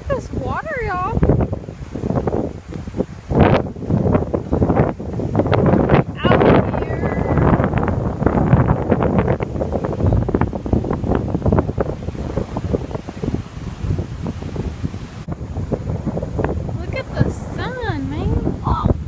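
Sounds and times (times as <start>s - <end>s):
wind gusting across microphone: 0.0s - 19.0s.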